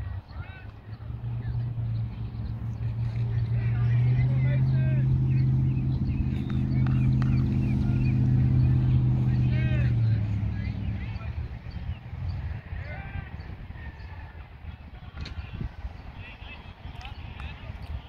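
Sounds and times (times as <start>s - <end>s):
low motor hum: 0.0s - 13.7s.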